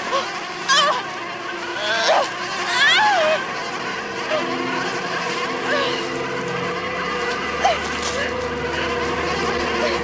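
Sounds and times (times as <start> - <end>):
buzzing drone of held tones: 0.0 - 10.0
loud wailing glide: 0.0 - 10.0.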